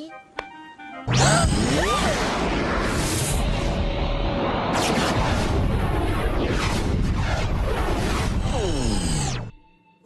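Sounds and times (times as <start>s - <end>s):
falling whooshes: 1.4s - 8.8s
dense rushing rumble: 2.1s - 8.8s.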